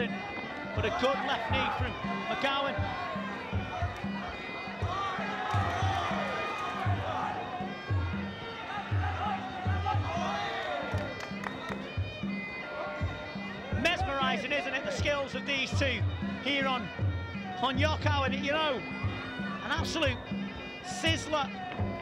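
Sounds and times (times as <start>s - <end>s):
reedy pipe melody: 0.0s - 22.0s
steady drum beat: 0.8s - 12.4s, 13.0s - 18.4s.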